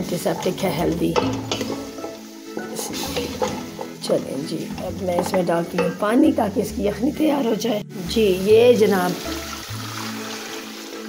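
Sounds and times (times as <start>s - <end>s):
utensil scraping a pot: 0.0s - 6.1s
meat sizzling in a pot: 0.0s - 11.0s.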